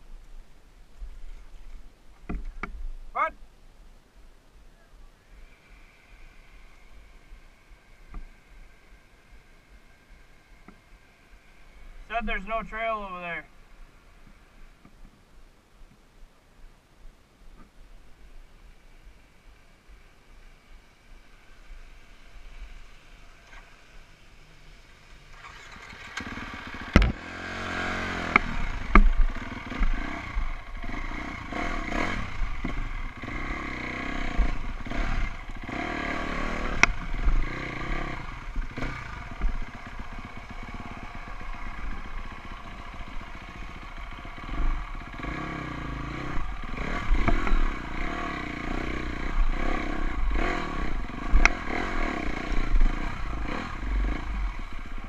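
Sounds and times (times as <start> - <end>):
dirt bike engine revving: 25.2 - 55.0.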